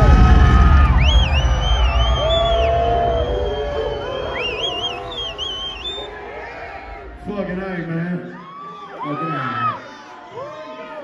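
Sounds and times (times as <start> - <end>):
heavy bass from concert speakers: 0.0 - 8.3
crowd cheering: 0.0 - 11.0
person whistling loudly: 0.9 - 6.2.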